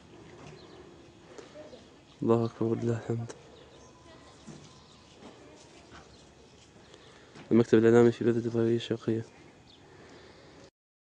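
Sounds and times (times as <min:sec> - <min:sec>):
outdoor background noise: 0:00.0 - 0:10.7.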